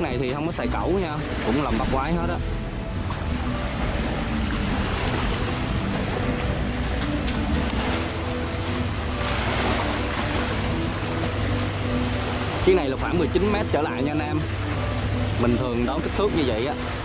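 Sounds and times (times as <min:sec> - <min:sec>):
boat engine rumble: 0:00.0 - 0:17.0
choppy sea: 0:00.0 - 0:17.0
music: 0:00.0 - 0:17.0
wind: 0:00.0 - 0:17.0.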